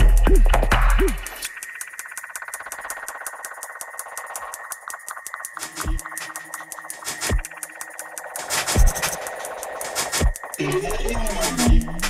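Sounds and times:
drum and bass music: 0.0s - 12.0s
fast ticking hi-hats: 0.0s - 12.0s.

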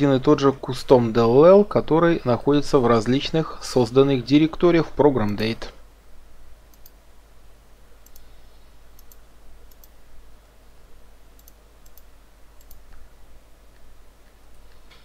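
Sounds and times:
steady low hum: 0.0s - 15.0s
faint sharp clicks: 6.7s - 7.0s, 11.4s - 13.0s.

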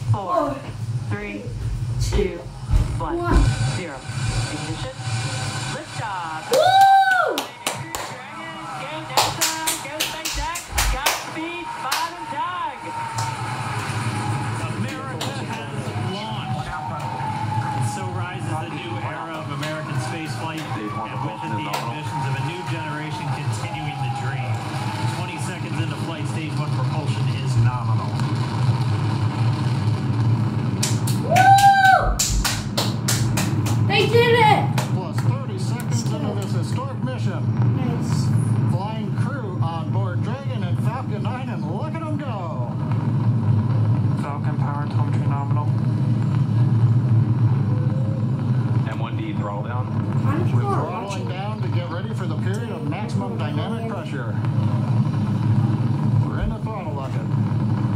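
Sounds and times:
rocket launch low rumble: 0.0s - 6.5s, 8.2s - 31.3s, 34.6s - 57.9s
whooping cheers: 6.4s - 26.0s, 31.1s - 32.6s
people clapping: 6.5s - 26.9s, 30.7s - 36.8s.

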